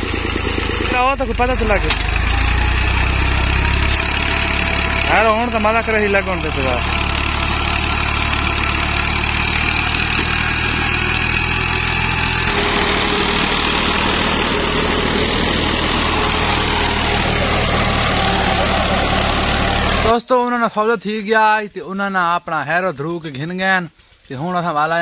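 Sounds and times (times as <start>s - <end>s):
tractor engine running: 0.0s - 20.2s.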